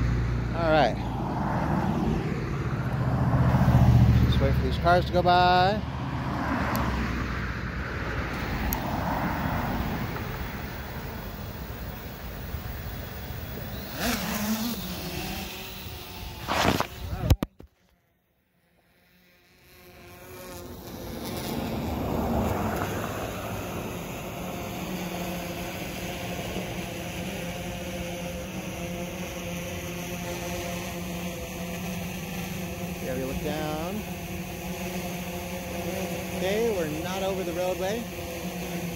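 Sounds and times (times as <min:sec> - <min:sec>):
cars passing: 0:00.0 - 0:17.3, 0:19.3 - 0:38.9
drone propellers humming: 0:00.0 - 0:17.5, 0:18.9 - 0:38.9.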